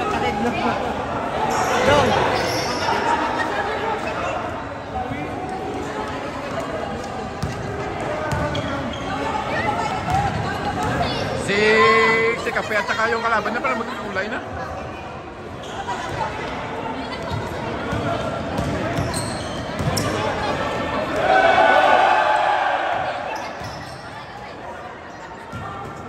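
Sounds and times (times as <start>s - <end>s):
shoe squeaks: 1.5s - 3.1s, 8.3s - 9.4s, 18.8s - 20.3s, 23.3s - 24.4s
basketball bouncing on court: 7.4s - 8.8s, 9.8s - 11.3s, 17.1s - 20.2s, 25.5s - 26.0s.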